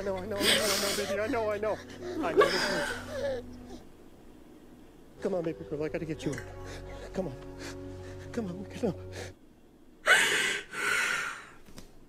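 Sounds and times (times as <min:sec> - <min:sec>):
person sobbing gasping breaths: 0:00.3 - 0:03.9, 0:06.4 - 0:09.4, 0:10.0 - 0:11.6.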